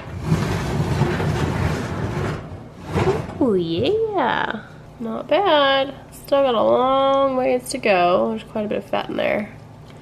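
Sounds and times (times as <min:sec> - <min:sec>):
oven rack sliding on metal runners: 0:00.0 - 0:03.5.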